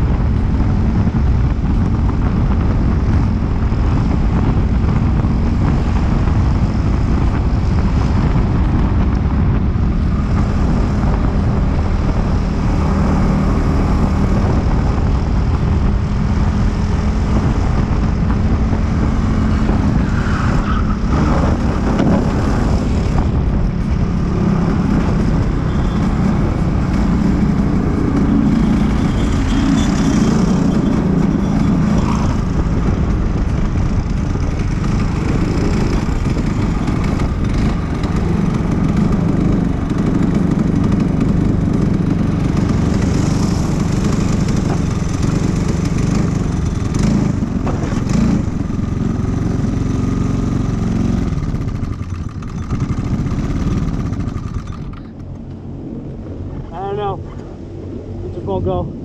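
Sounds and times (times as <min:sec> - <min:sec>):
go-kart engine running hard: 0:00.0 - 0:56.3.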